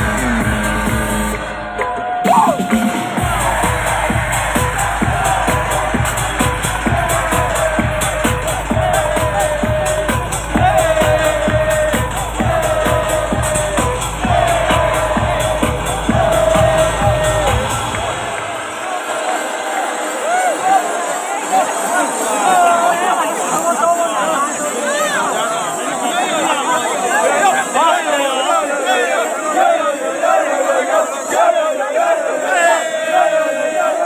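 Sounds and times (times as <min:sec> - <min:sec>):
loud live music with heavy bass: 0:00.0 - 0:18.8
crowd cheering: 0:00.0 - 0:34.0.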